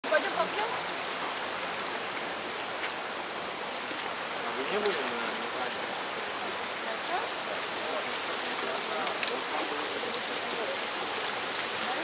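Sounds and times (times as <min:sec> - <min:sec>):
voices: 0:00.0 - 0:00.9, 0:03.7 - 0:12.0
mountain stream rushing: 0:00.0 - 0:12.0.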